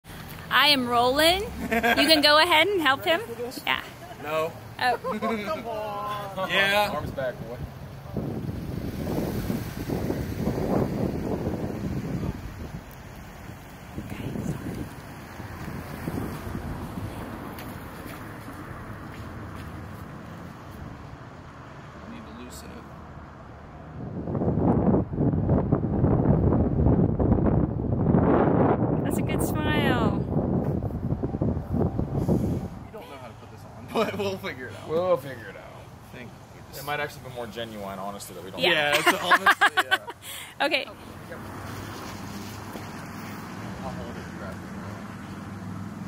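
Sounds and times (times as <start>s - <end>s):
wind buffeting microphone: 6.8s - 19.1s, 23.6s - 33.0s.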